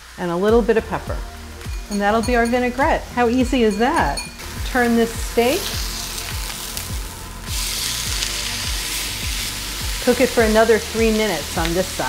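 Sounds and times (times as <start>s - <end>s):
steak sizzling in a pan: 0.0s - 12.0s
background music with low beat: 0.5s - 12.0s.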